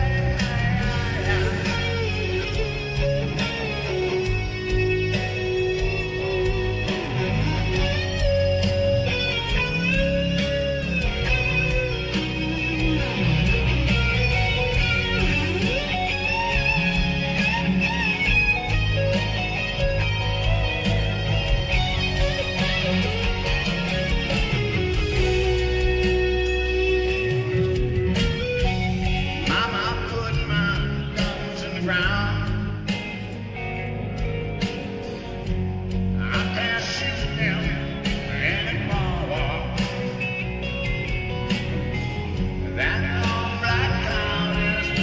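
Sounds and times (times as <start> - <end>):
electric guitar lead notes: 0.0 - 45.0
live rock band playing: 0.0 - 45.0.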